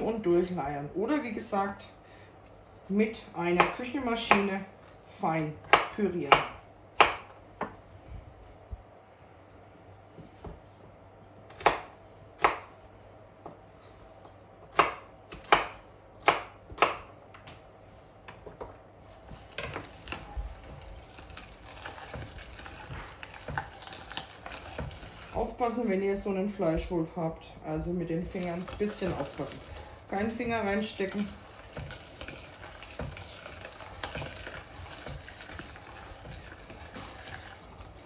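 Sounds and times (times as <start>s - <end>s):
meat grinder grinding vegetables: 19.4s - 25.4s, 30.9s - 38.0s.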